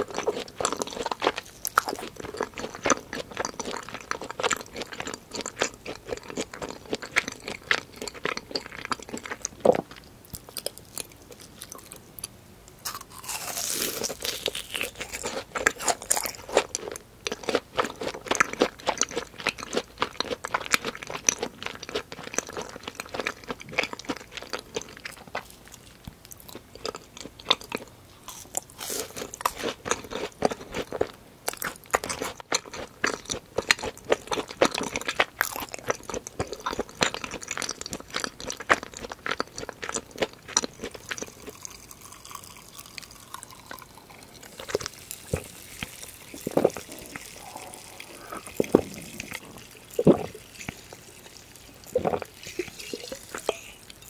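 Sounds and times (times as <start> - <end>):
crunchy chewing of fried food: 0.0 - 54.0.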